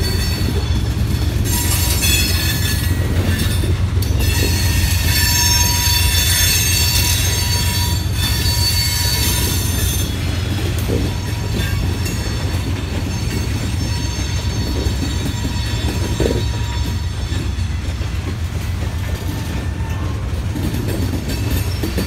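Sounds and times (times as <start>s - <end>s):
freight wheels rumbling on rail: 0.0s - 22.0s
ringing wheel squeal: 0.0s - 22.0s.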